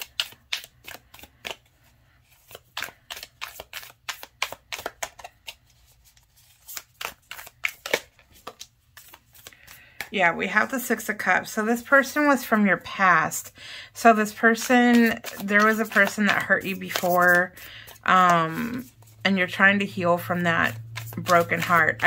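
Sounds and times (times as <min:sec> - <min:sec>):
cards being shuffled: 0:00.0 - 0:22.0.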